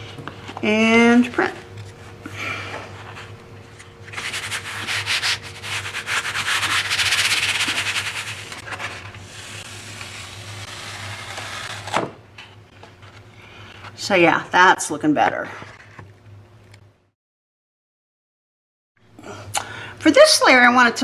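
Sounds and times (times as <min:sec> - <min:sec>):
hand rubbing paper: 0:02.9 - 0:12.0.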